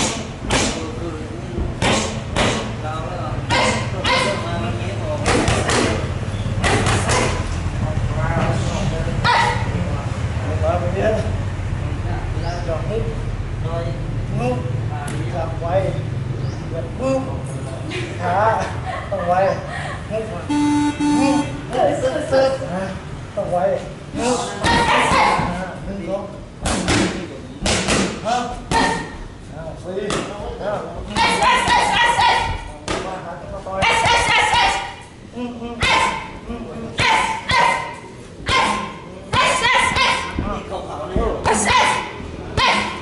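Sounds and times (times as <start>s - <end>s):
voices: 0.0s - 43.0s
boxing gloves hitting pads: 1.7s - 2.7s, 5.2s - 7.4s.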